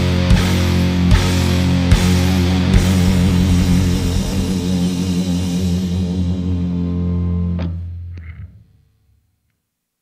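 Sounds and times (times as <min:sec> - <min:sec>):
distorted guitar and bass chord: 0:00.0 - 0:08.6
cymbal wash: 0:01.2 - 0:07.6.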